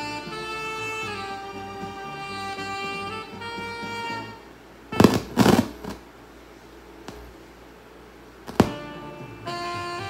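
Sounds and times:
held music chord: 0:00.0 - 0:04.5, 0:08.6 - 0:10.0
loud noisy thumps: 0:05.0 - 0:06.0, 0:08.5 - 0:08.9.

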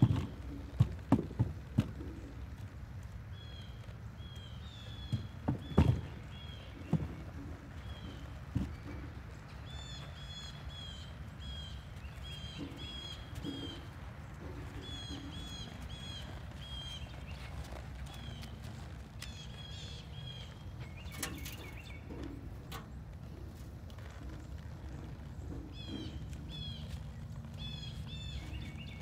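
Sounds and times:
hooves stepping on soft dirt: 0:00.0 - 0:29.0
low outdoor rumble: 0:00.0 - 0:29.0
birds chirping: 0:02.0 - 0:29.0.

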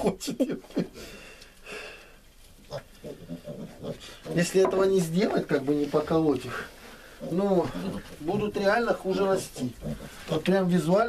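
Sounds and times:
piglets grunting: 0:02.7 - 0:04.8, 0:06.5 - 0:10.5.

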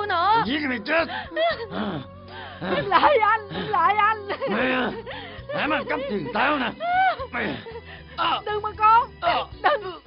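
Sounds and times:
background music: 0:00.0 - 0:10.0
voices crying out and gasping: 0:00.9 - 0:10.0.

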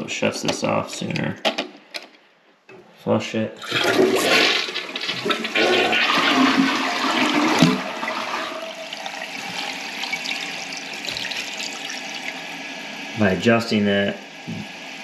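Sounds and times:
toilet flushing: 0:03.6 - 0:15.0
toilet tank refilling hiss: 0:03.6 - 0:15.0.

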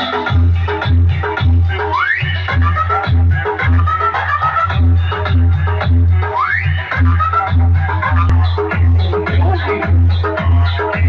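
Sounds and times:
electronic dance music: 0:00.0 - 0:11.0
heavy bass beat: 0:00.0 - 0:11.0.

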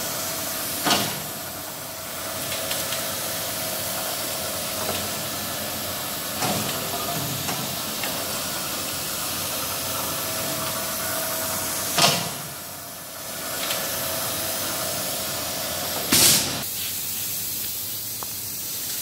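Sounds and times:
machine running with steady hiss: 0:00.0 - 0:19.0.

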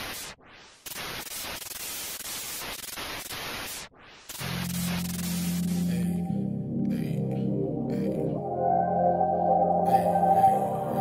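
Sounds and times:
television static hiss: 0:00.0 - 0:06.2.

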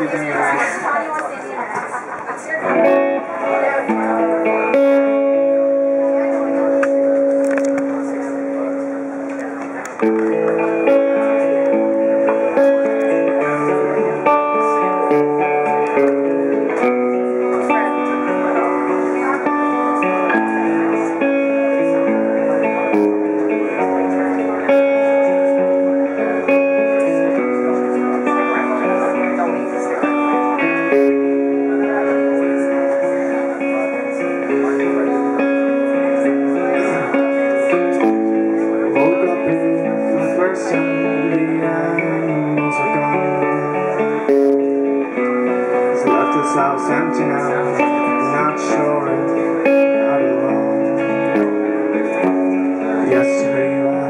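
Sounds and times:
acoustic guitar: 0:00.0 - 0:54.0.

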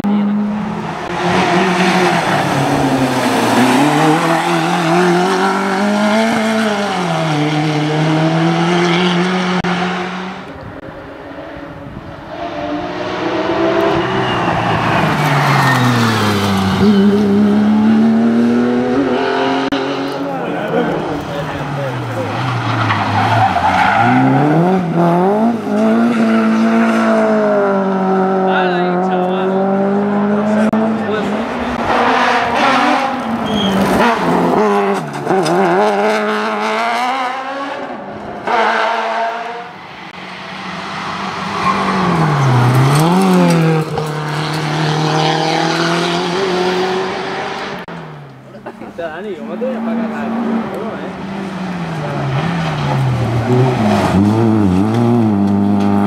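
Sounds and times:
race car engines revving: 0:00.0 - 0:56.0.

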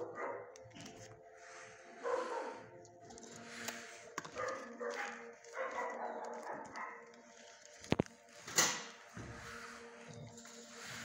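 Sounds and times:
dogs barking: 0:00.0 - 0:00.9, 0:01.8 - 0:07.7.

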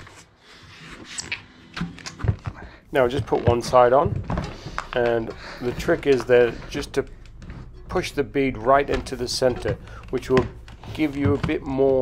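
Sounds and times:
bike tyre knocks and rubbing: 0:02.2 - 0:06.6.

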